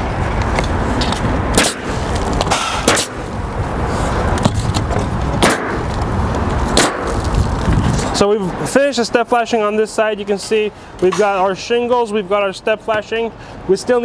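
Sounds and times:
steady low rumble: 0.0s - 9.3s
nail gun firing: 1.6s - 1.9s, 2.5s - 3.2s, 5.4s - 5.9s, 6.8s - 7.2s.

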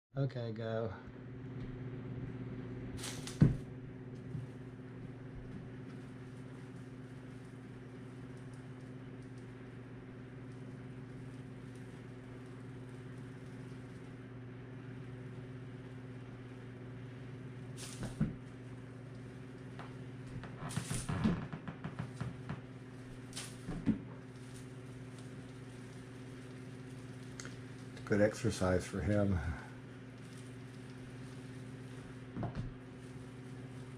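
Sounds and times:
low electrical hum: 0.2s - 33.9s
cats landing on hard floor: 3.0s - 3.6s
palm fronds rustling: 22.0s - 33.9s.

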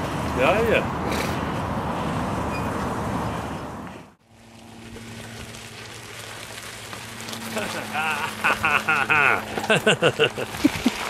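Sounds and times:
bicycle tyres on path: 0.0s - 11.0s.

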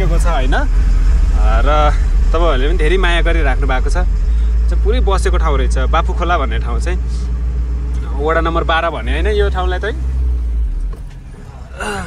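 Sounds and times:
truck cab rumble: 0.0s - 12.0s.

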